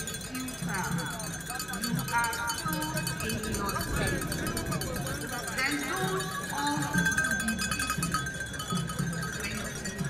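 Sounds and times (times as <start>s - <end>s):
crowd voices: 0.0s - 10.0s
metal bells clanking: 0.0s - 10.0s.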